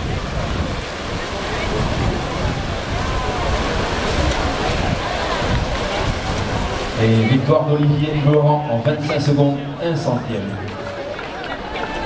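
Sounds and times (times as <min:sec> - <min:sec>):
wind buffeting microphone: 0:00.0 - 0:08.8
hubbub of voices: 0:00.0 - 0:12.0
swimmers splashing: 0:00.0 - 0:12.0.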